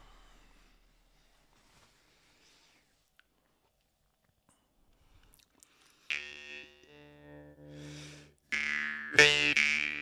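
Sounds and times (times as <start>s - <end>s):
jaw harp plucked: 6.1s - 10.0s.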